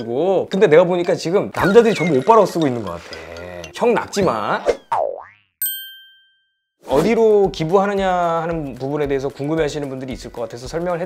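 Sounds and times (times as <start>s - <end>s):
springy boing: 1.6s - 3.8s, 4.8s - 5.7s
bright ding: 5.6s - 6.5s.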